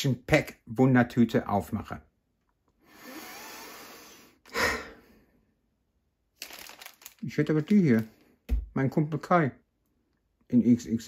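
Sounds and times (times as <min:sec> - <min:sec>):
person breathing out: 0:02.8 - 0:05.4.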